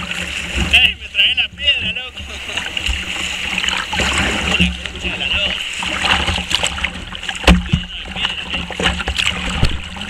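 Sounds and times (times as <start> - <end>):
paddle strokes splashing: 0.0 - 10.0
water rushing along hull: 0.0 - 10.0
wind rumbling on microphone: 0.0 - 10.0.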